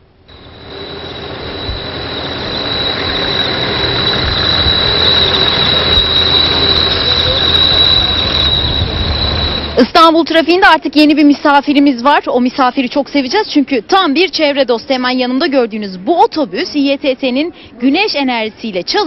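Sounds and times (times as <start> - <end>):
electric bus running: 0.0 - 10.1
high-pitched whine: 0.0 - 10.4.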